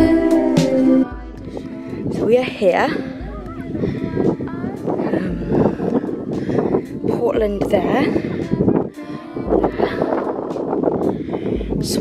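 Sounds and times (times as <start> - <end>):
wind buffeting microphone: 1.1 - 12.0.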